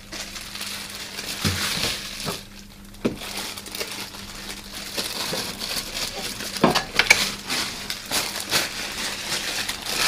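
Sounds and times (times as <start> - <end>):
rustling and crinkling: 0.0 - 10.0.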